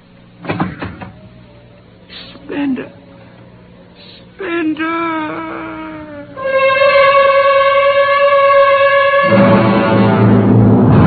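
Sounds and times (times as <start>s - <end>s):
lower orchestral chord: 6.4s - 11.0s
orchestral high note held: 6.4s - 11.0s.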